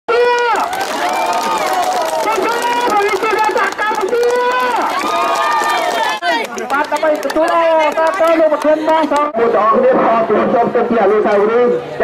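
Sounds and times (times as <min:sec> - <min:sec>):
crowd hand clapping: 0:00.2 - 0:09.3.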